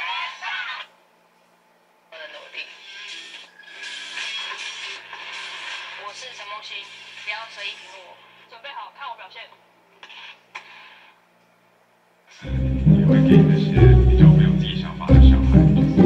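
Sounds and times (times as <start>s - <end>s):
television music: 0.0s - 1.0s, 2.1s - 9.1s, 12.4s - 16.0s
television voices: 0.0s - 16.0s.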